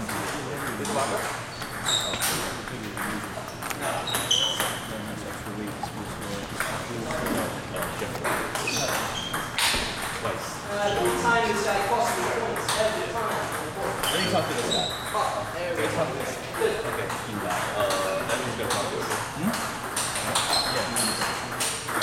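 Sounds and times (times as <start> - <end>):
table tennis ball hits: 0.0 - 5.5, 6.6 - 10.2, 18.6 - 22.0.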